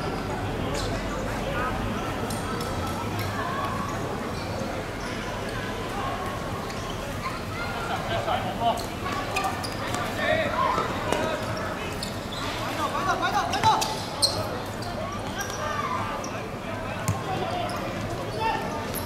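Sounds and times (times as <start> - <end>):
players calling and shouting: 0.6 - 19.0.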